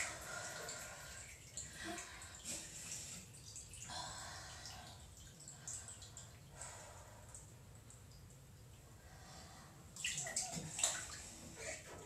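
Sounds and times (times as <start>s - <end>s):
water dripping: 0.0s - 11.8s
light water splashing: 10.0s - 12.0s.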